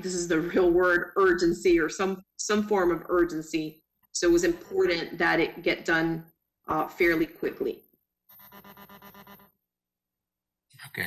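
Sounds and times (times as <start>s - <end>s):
rapid pulsing electronic tone: 4.2s - 5.9s, 8.4s - 9.5s.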